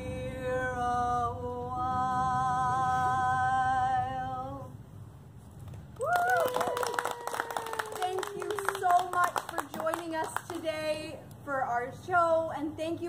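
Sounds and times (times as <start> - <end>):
falling vocal whoop: 6.0 - 8.0
audience applauding: 6.0 - 10.6.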